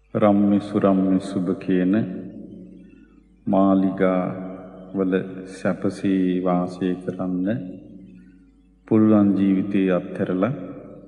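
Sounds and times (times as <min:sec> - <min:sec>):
man preaching: 0:00.1 - 0:02.2, 0:03.5 - 0:04.4, 0:05.0 - 0:07.7, 0:08.9 - 0:10.7.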